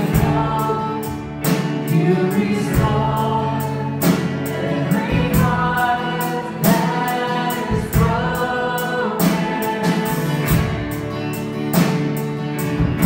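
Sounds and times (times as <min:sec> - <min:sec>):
man singing into a microphone: 0:00.0 - 0:10.6
voices singing along: 0:00.0 - 0:11.0
acoustic guitar strumming: 0:00.0 - 0:13.0.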